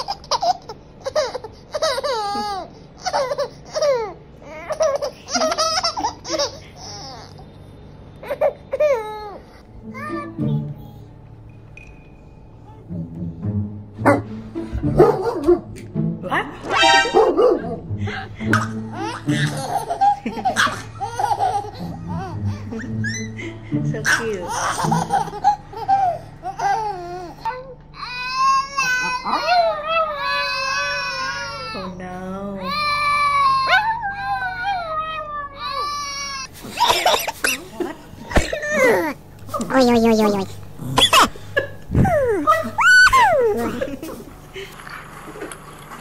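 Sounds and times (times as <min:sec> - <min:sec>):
baby crying: 0:01.0 - 0:07.5, 0:24.4 - 0:31.9, 0:32.6 - 0:37.4, 0:38.3 - 0:44.0
background music with low bass: 0:09.6 - 0:25.4
people laughing: 0:16.8 - 0:26.0, 0:36.6 - 0:39.2, 0:41.1 - 0:45.6
dog howling: 0:33.2 - 0:36.0, 0:42.0 - 0:43.8.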